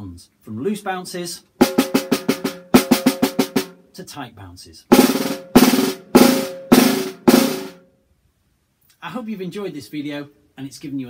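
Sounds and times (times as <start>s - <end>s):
snare drum buzz strokes: 1.6s - 3.8s, 4.9s - 7.8s.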